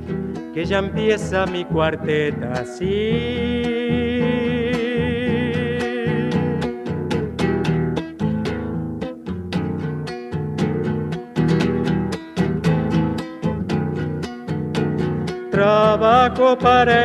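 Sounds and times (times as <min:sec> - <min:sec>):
acoustic guitar strumming chords: 0:00.0 - 0:17.0.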